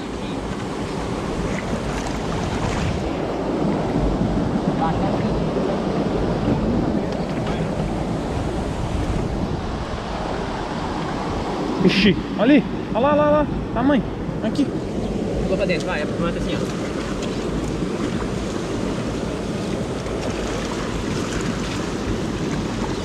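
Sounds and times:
water rushing and sloshing: 0.0 - 23.0.

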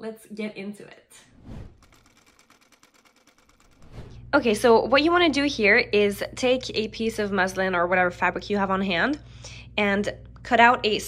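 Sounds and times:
faint sewing machine stitching: 1.4 - 4.4.

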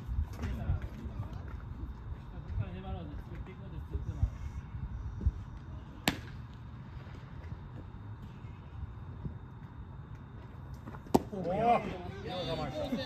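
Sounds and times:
baseball smacking into mitt: 6.0 - 6.4, 11.0 - 11.4
people shouting: 11.9 - 13.0.

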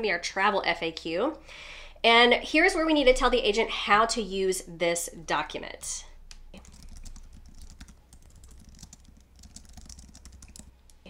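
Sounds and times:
typing on computer keyboard: 6.6 - 11.0.

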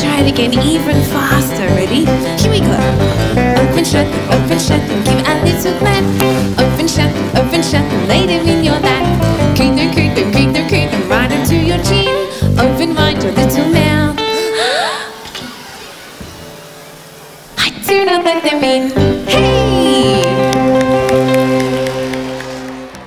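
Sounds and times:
live band upbeat instrumental: 0.0 - 11.8, 19.0 - 23.0.

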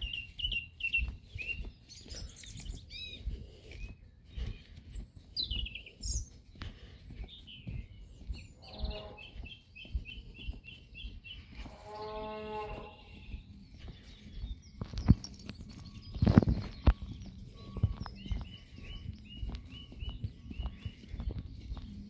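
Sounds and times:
bird chirping: 0.0 - 22.0.

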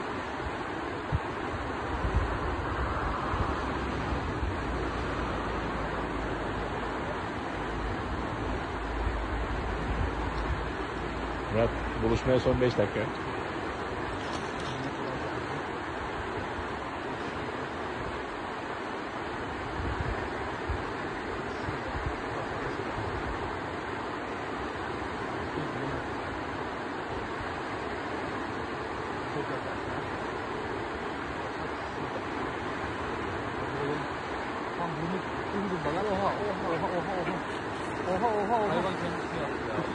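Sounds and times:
river rushing: 0.0 - 39.9.

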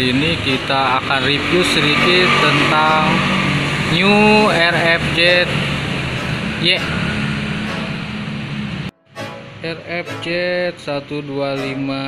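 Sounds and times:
engine running: 0.0 - 8.9.

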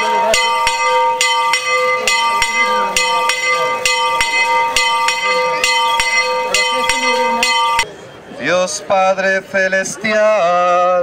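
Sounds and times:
church bell ringing: 0.0 - 7.9.

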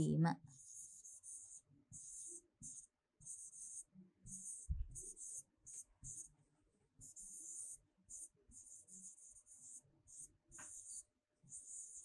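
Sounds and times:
stylus scratching on a tablet: 0.0 - 12.0.

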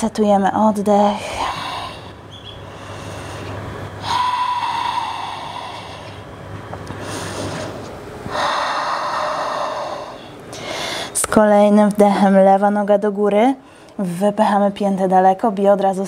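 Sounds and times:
woman breathing deeply: 1.2 - 11.2.

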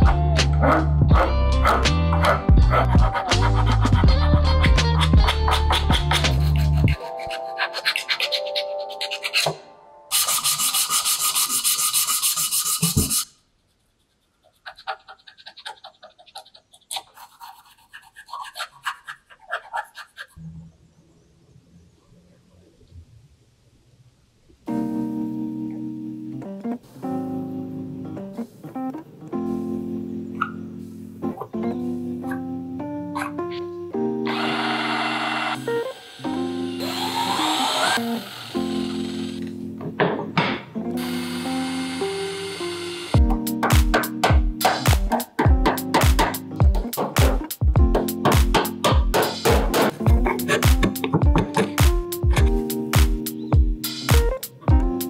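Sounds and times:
keyboard music: 0.0 - 10.7, 24.7 - 55.0
hand sanding wood: 5.0 - 20.4, 49.2 - 51.8
hand drill rasping into wood: 34.3 - 39.4.

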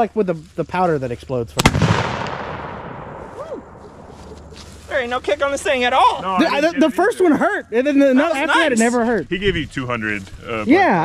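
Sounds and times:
man talking: 0.0 - 1.6, 6.0 - 10.8
gunshot echoing: 1.6 - 4.1.

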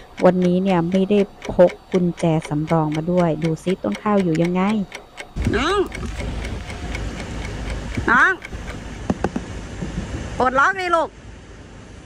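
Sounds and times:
light clicks: 0.2 - 9.2.

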